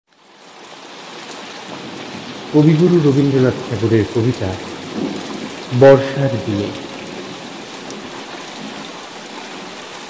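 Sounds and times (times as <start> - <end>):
heavy rainfall: 0.1 - 10.0.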